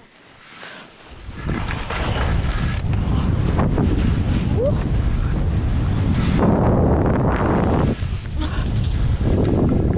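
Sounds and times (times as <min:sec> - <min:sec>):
skis scraping over snow: 0:00.0 - 0:09.9
wind buffeting microphone: 0:01.1 - 0:09.9.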